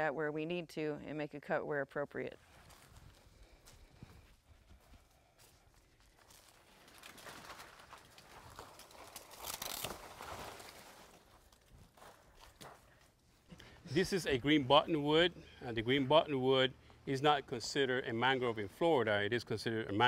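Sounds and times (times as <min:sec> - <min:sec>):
palm fronds rustling: 0:02.4 - 0:13.9.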